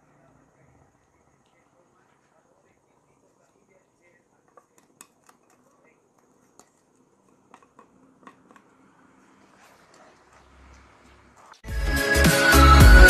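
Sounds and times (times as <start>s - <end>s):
wooden spatula scraping a pan: 9.2s - 11.6s.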